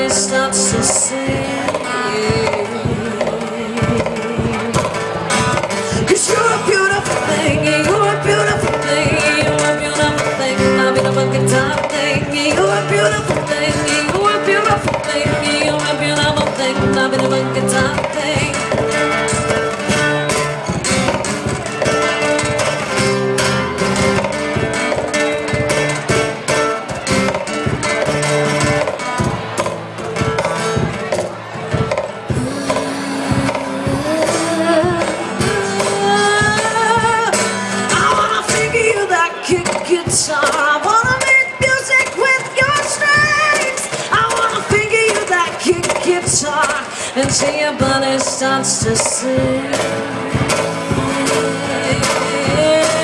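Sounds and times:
acoustic guitar strumming chords: 0.0s - 53.0s
wordless sung vocal: 32.3s - 42.0s, 43.6s - 53.0s.

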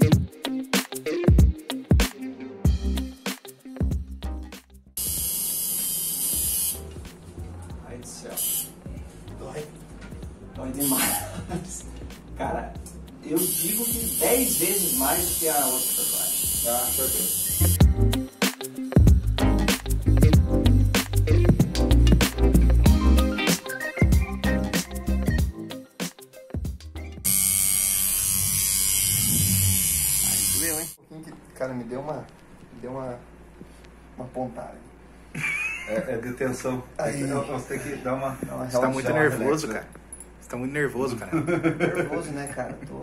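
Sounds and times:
tattoo machine buzzing: 5.0s - 7.0s, 8.3s - 8.8s, 10.8s - 11.3s, 13.4s - 19.4s, 27.2s - 31.0s.

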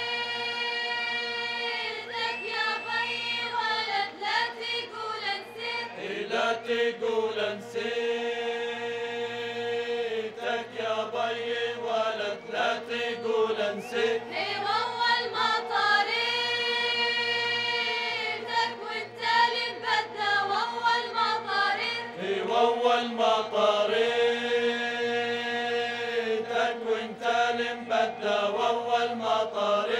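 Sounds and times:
men and women singing folk song: 0.0s - 29.9s.

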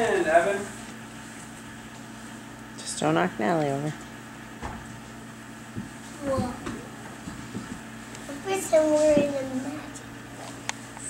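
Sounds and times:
low indoor hum: 0.0s - 11.0s.

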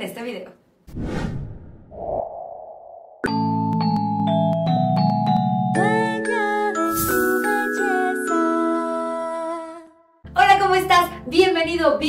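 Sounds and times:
sudden whoosh: 0.9s - 3.2s.

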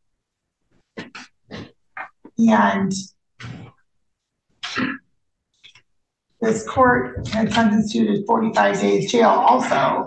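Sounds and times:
person clearing throat: 4.6s - 5.0s.

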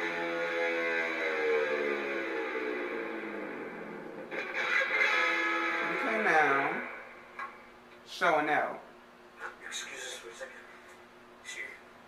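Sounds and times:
electric guitar held notes: 0.0s - 7.1s.

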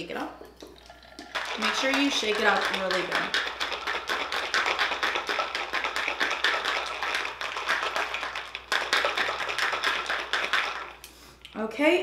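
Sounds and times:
ice cubes rattling in metal cup: 1.2s - 11.0s.

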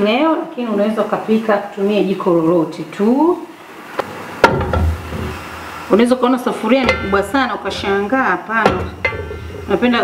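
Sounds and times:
metal pot knocking on grate: 4.4s - 5.4s, 6.8s - 8.0s, 8.6s - 9.8s.

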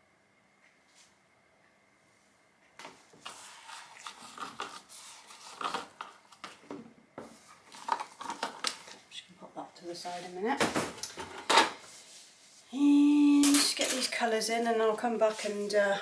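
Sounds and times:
rustling: 3.2s - 6.6s.

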